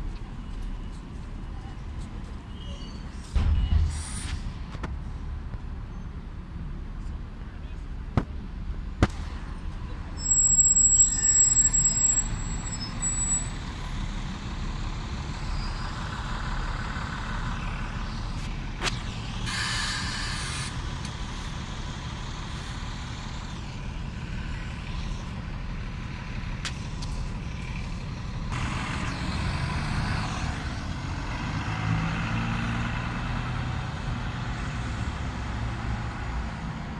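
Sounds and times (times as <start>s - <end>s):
diesel bus engine running: 0.0s - 36.9s
air brake hiss: 3.7s - 4.6s, 19.5s - 20.7s.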